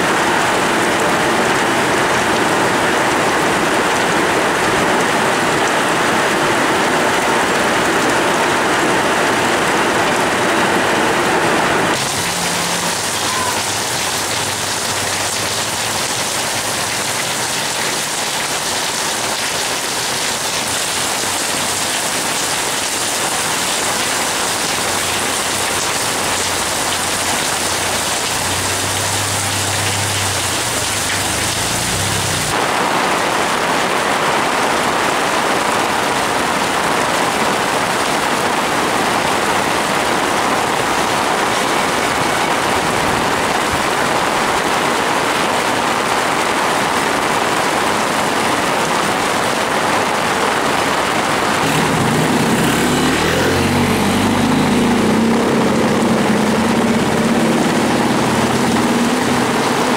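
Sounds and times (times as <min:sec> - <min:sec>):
rain on metal roofs: 0:00.0 - 0:59.9
rain on wet pavement: 0:00.0 - 0:59.9.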